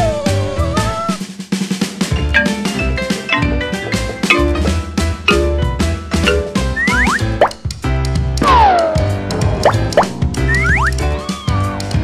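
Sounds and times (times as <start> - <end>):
bouncy cartoon music: 0.0 - 12.0
rising pitch glides: 8.5 - 11.1.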